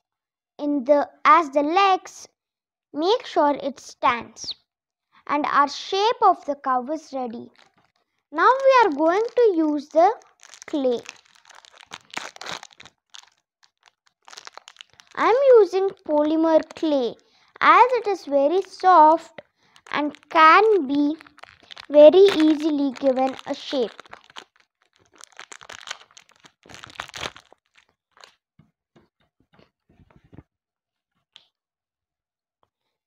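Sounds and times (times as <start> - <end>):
packaging crinkling: 7.5 - 17.0, 17.8 - 28.4.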